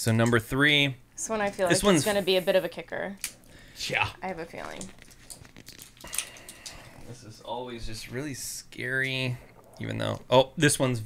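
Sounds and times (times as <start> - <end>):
paper crinkling: 4.5 - 6.9.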